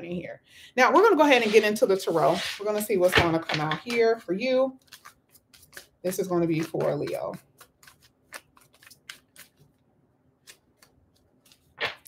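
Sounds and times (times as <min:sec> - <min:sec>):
cards being shuffled: 0:04.8 - 0:09.8, 0:10.4 - 0:12.0.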